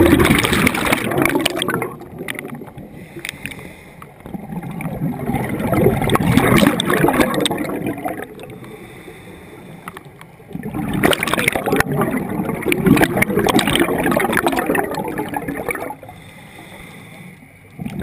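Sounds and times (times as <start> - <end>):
bubbles gurgling: 0.0 - 3.2, 4.1 - 9.0, 9.8 - 16.2, 17.7 - 18.0
diver exhaling underwater: 0.0 - 18.0.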